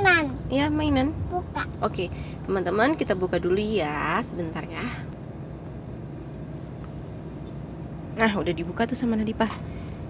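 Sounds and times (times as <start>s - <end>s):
car engine rumble inside cabin: 0.0s - 10.0s.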